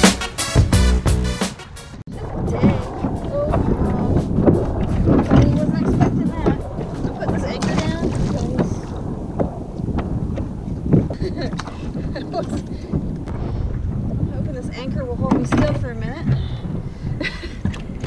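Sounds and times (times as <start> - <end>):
wind buffeting microphone: 2.0 - 18.0
water slapping kayak hull: 2.1 - 18.0.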